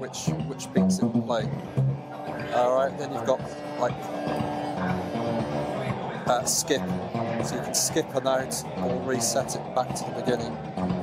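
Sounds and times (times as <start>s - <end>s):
synthesizer sequenced pattern: 0.0s - 11.0s.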